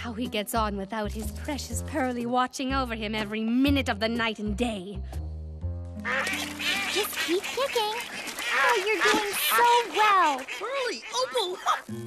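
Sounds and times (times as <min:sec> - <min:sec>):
cartoon duckling quacks: 0:06.1 - 0:11.9.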